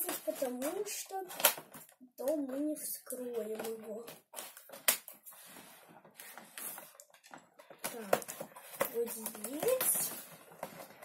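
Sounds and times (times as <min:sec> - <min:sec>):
packaging crackling: 0:06.0 - 0:11.0.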